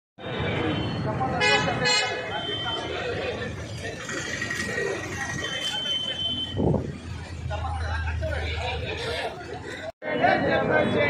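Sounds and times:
crowd chatter: 0:00.2 - 0:11.0
street noise: 0:00.2 - 0:11.0
vehicle horn honking: 0:01.4 - 0:02.9.

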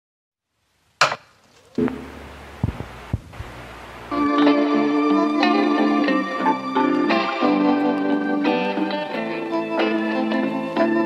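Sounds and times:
sharp hits and low thuds: 0:01.0 - 0:03.5.

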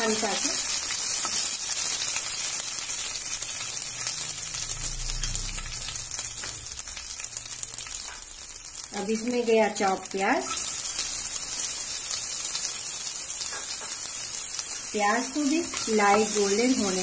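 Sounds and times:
spices sizzling in hot oil: 0:00.0 - 0:17.0.

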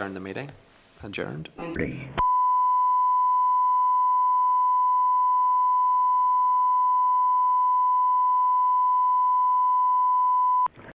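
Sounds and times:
steady test tone: 0:02.2 - 0:10.7.

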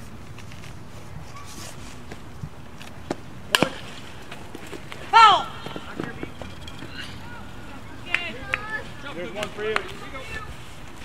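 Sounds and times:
softball smacking bat or glove: 0:03.1 - 0:03.9
person shouting: 0:05.1 - 0:05.6.

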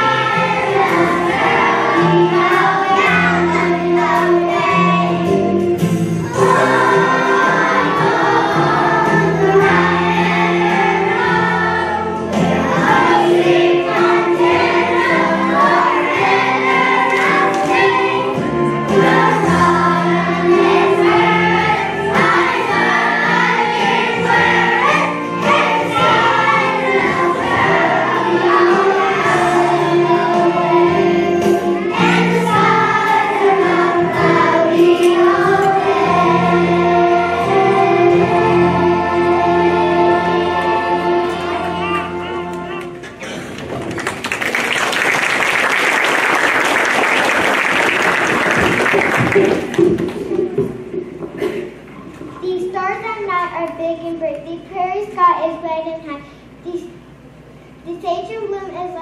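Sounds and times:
children's choir singing: 0:00.0 - 0:43.4.

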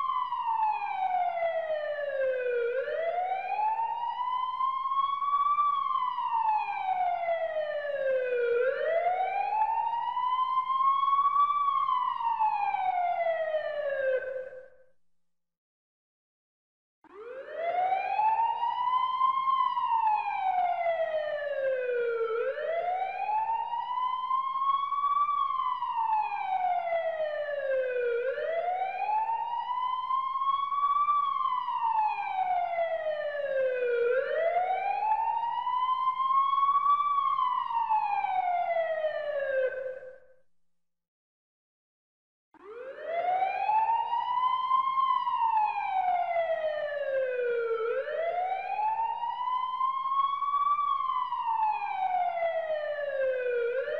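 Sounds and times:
emergency siren wailing: 0:00.0 - 0:14.7, 0:17.1 - 0:40.3, 0:42.6 - 0:53.9.

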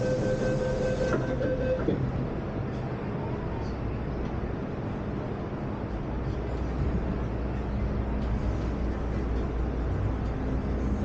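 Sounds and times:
train doors shutting knock: 0:00.0 - 0:02.0
train carriage hum: 0:00.0 - 0:11.0.

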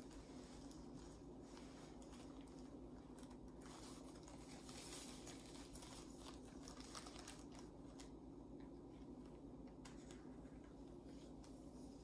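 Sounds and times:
plastic crinkling: 0:00.0 - 0:12.0.

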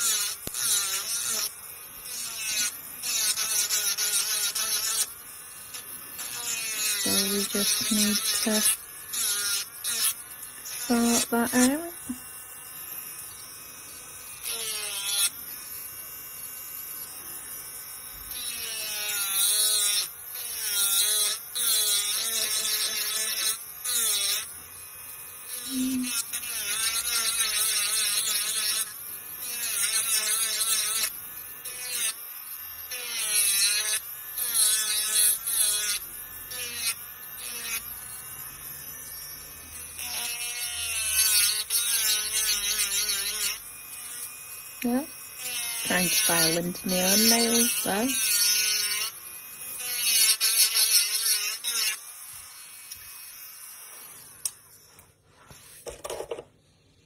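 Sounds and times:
electric nail drill whining: 0:00.0 - 0:55.1.

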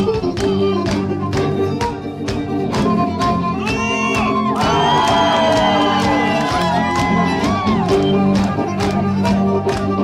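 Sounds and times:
live folk-rock band playing: 0:00.0 - 0:10.0.

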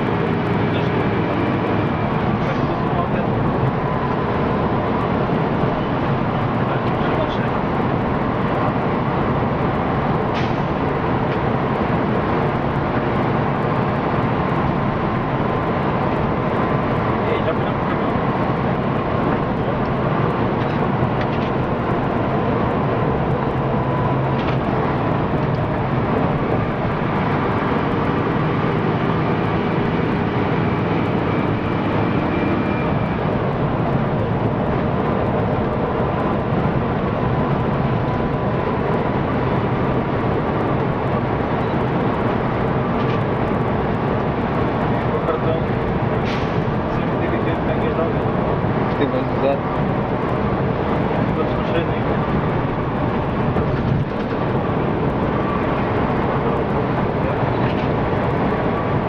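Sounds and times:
bus engine and road noise: 0:00.0 - 0:59.0.

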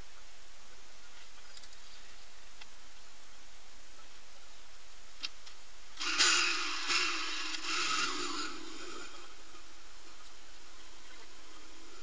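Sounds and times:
motorcycle engine revving: 0:06.0 - 0:09.7.

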